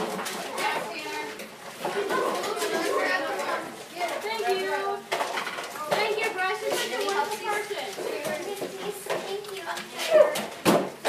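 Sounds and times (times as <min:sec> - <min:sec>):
children talking: 0:00.0 - 0:11.0
objects clicking on desks: 0:00.0 - 0:11.0.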